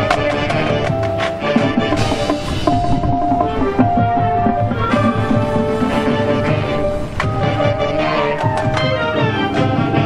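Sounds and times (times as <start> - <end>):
drums and percussion beat: 0.0 - 10.0
marching band held notes: 0.0 - 10.0.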